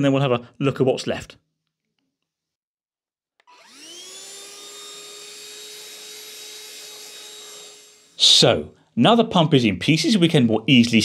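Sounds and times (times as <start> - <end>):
vacuum cleaner motor whine: 3.4 - 8.2.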